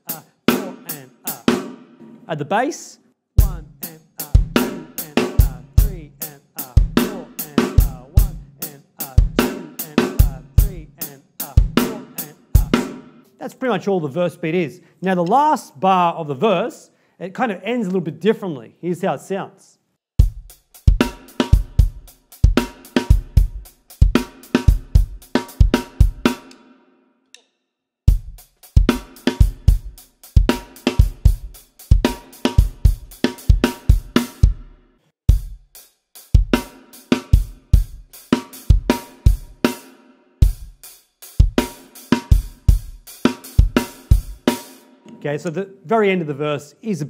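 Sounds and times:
rock drum groove: 0.0s - 2.4s, 3.4s - 13.4s, 20.2s - 26.5s, 28.1s - 45.2s.

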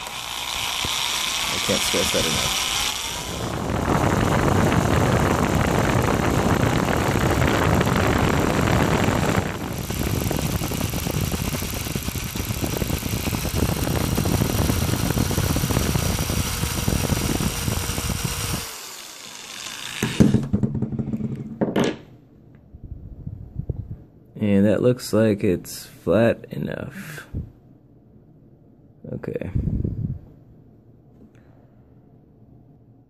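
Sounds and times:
cordless drill running: 0.0s - 20.5s.

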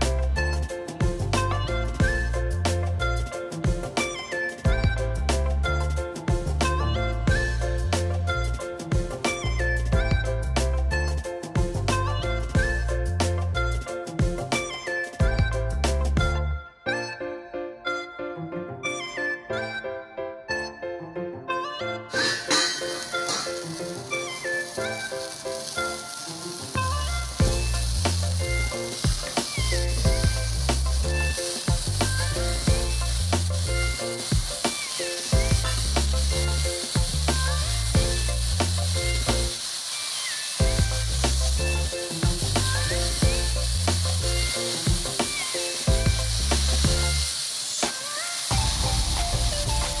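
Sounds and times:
music with repeating bass line: 4.7s - 14.5s, 27.0s - 34.6s, 35.4s - 39.6s, 40.6s - 45.2s
continuous high hiss: 22.2s - 50.0s.

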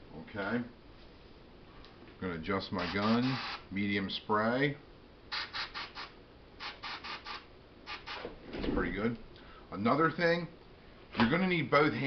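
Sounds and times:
airbrush spray hisses: 5.3s - 8.3s.

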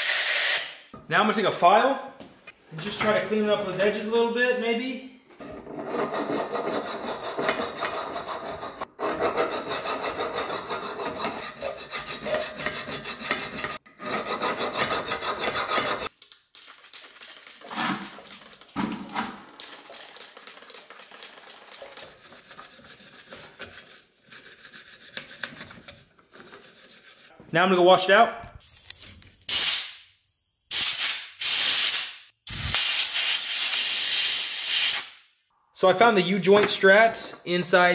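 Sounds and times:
hand file rasping on steel: 5.8s - 16.1s
spray bottle spraying: 16.5s - 18.7s, 19.5s - 22.1s, 30.7s - 35.2s.

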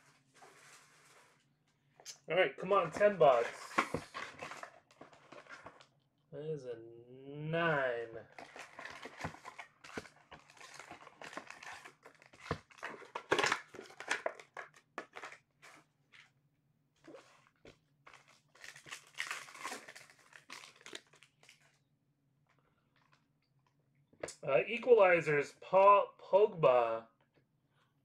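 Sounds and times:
card pack wrappers crinkling and tearing: 2.7s - 5.8s, 8.3s - 15.8s, 18.1s - 21.8s.

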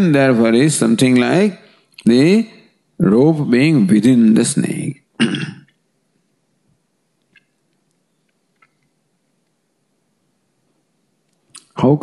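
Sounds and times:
man clearing his throat: 5.2s - 5.7s.

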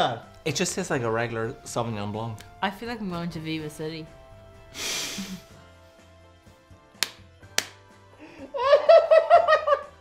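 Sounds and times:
person laughing: 4.8s - 5.5s, 8.3s - 9.9s
sharp clicks or slaps: 6.9s - 8.0s.

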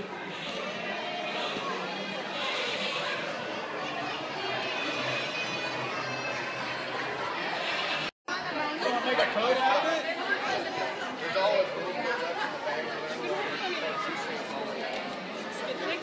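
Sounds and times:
chatter of many people: 0.0s - 16.0s.

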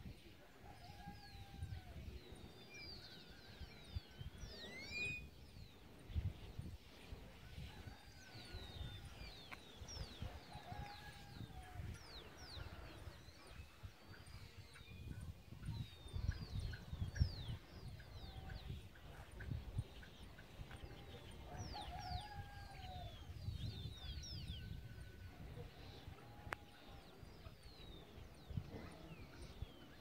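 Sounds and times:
wind rumble on microphone: 0.0s - 30.0s.

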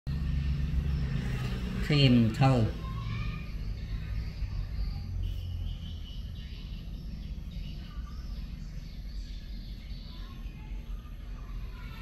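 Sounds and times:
low mechanical hum: 0.1s - 12.0s.

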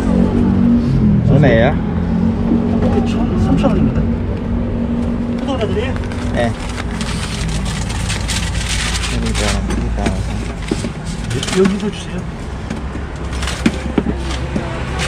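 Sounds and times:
quick rustles and clicks: 6.0s - 12.2s.

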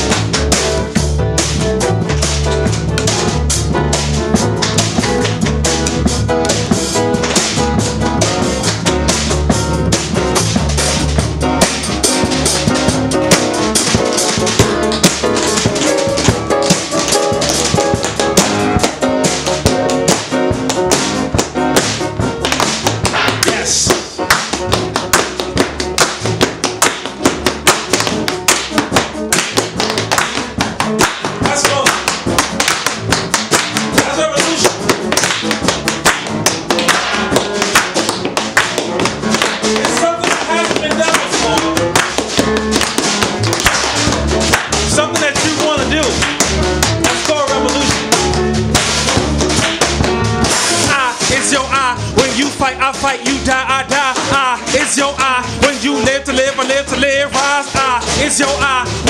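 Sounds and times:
live band playing: 0.0s - 59.0s
rapid sharp taps: 1.4s - 51.6s.

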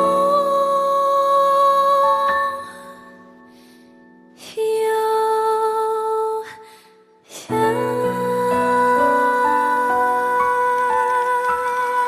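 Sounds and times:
woman singing a long note: 7.5s - 12.0s.

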